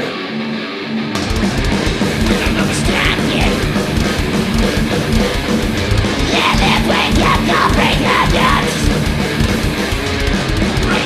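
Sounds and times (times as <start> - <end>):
distorted guitar riff: 0.0 - 11.0
thrash metal band playing live: 0.0 - 11.0
drums and crashing cymbals: 1.2 - 11.0.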